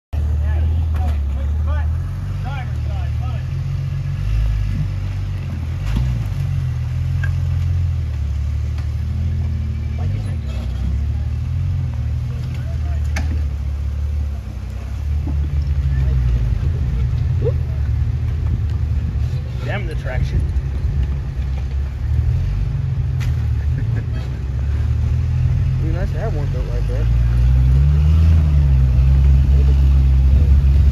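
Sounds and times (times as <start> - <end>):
buggy engine rumbling: 0.1 - 30.9.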